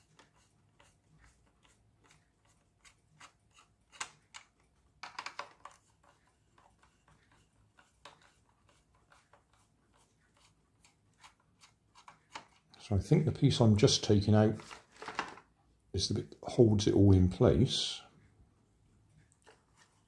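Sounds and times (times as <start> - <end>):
screwdriver clicking and scraping plastic: 0.0 - 9.7, 10.8 - 12.7.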